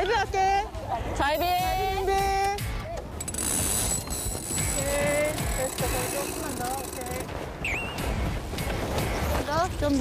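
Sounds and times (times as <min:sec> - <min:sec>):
water noise: 0:03.0 - 0:10.0
wind rumbling on microphone: 0:03.0 - 0:10.0.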